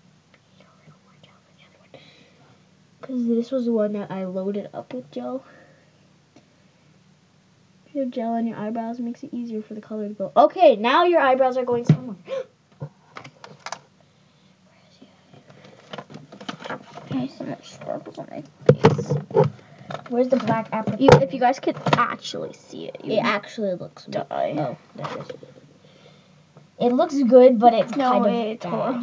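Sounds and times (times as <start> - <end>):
person whispering: 0.4 - 2.1.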